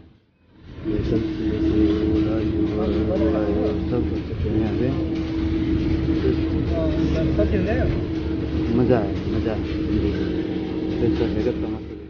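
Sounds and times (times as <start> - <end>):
engine drone: 0.6 - 12.0.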